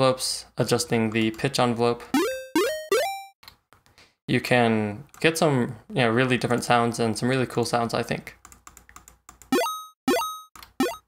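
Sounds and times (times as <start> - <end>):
chiptune synth blips rising in pitch: 2.2 - 3.3, 9.5 - 11.0.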